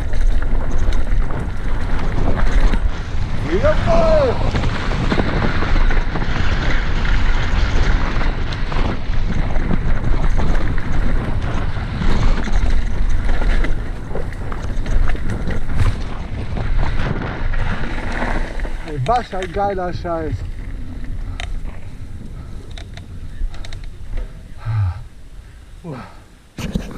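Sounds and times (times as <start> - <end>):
tyre rumble on gravel: 0.0 - 21.1
bike rattling and knocking: 0.0 - 24.7
wind buffeting microphone: 0.0 - 25.8.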